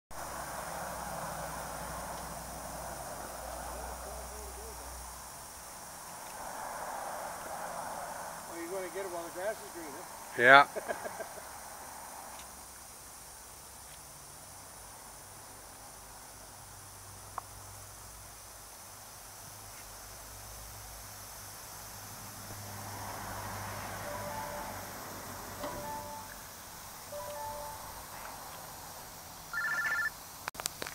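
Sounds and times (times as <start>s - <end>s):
lawn sprinklers hissing: 0.2s - 23.2s, 28.3s - 30.9s
short beeping tones: 24.0s - 24.9s, 25.6s - 26.4s, 27.2s - 28.0s, 29.5s - 30.1s.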